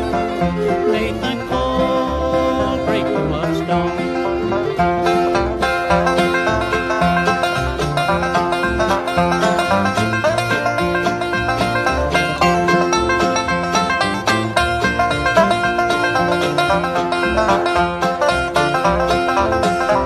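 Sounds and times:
acoustic guitar rhythm: 0.0s - 20.0s
banjo rolling notes: 0.0s - 20.0s.

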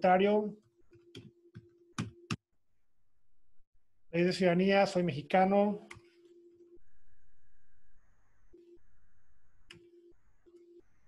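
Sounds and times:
low electronic beeps: 6.7s - 10.9s.

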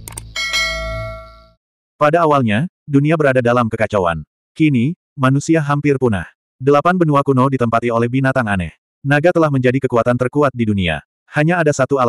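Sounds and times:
bright bell ding: 0.4s - 1.6s.

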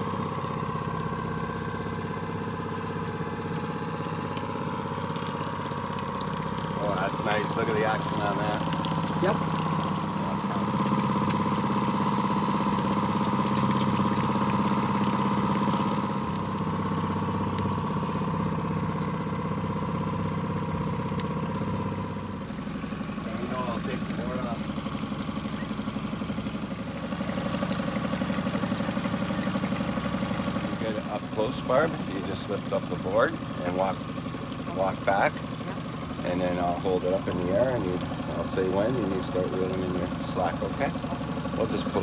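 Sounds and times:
boat motor running: 0.0s - 42.0s.

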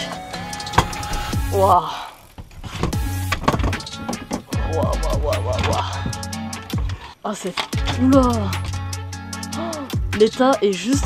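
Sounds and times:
background music with steady beat: 0.0s - 1.9s, 2.8s - 11.0s
plastic frame scraping: 2.2s - 4.6s.

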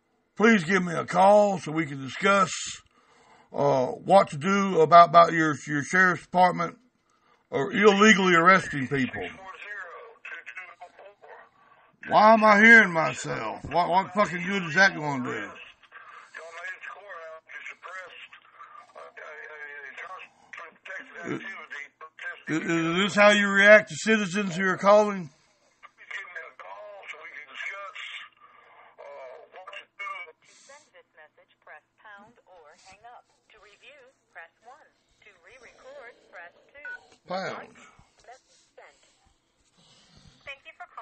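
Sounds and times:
faint speech over phone line: 7.5s - 39.2s, 40.5s - 41.0s.

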